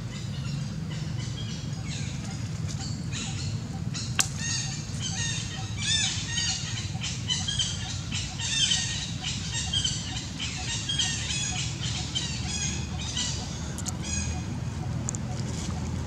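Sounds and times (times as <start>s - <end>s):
steady low rumble: 0.0s - 16.0s.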